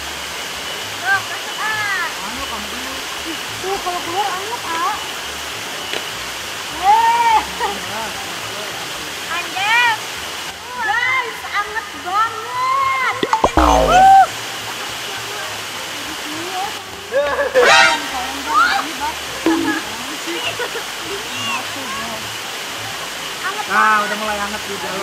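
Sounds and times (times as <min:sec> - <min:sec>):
running water rushing: 0:00.0 - 0:25.0.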